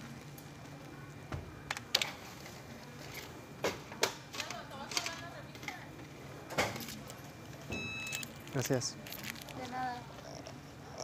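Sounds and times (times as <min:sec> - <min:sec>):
low store hum: 0:00.0 - 0:11.0
checkout register clicks and taps: 0:03.6 - 0:05.8.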